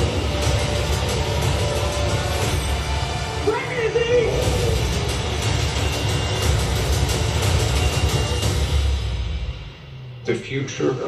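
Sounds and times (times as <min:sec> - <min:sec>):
movie trailer music and effects: 0:00.0 - 0:11.0.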